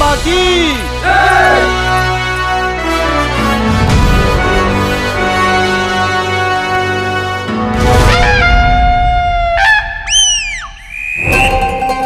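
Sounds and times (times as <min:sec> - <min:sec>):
dramatic orchestral music: 0:00.0 - 0:09.7.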